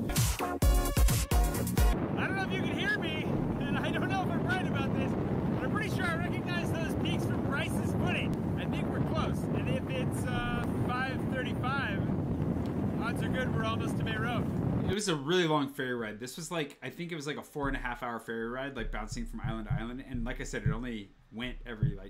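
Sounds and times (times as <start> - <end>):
wind on microphone: 1.9 - 15.0, 18.8 - 22.0.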